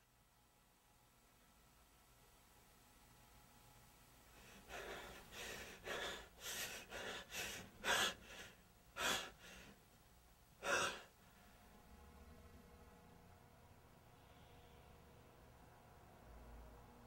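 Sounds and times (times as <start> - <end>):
person breathing hard: 4.3 - 9.8, 10.6 - 11.2.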